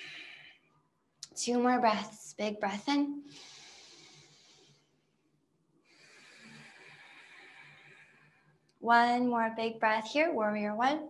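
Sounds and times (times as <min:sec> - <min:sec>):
woman breathing softly: 0:00.0 - 0:00.7, 0:03.2 - 0:05.0, 0:05.8 - 0:08.7.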